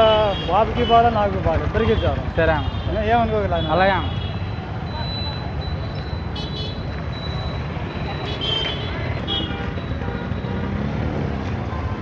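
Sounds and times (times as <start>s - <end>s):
motorbikes and scooters passing: 0.0s - 12.0s.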